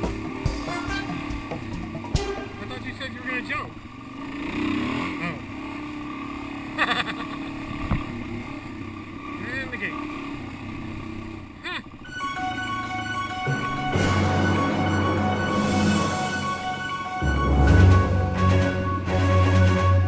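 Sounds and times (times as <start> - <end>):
music: 0.0 - 2.9, 12.1 - 20.0
dirt bike engine revving: 0.0 - 12.2.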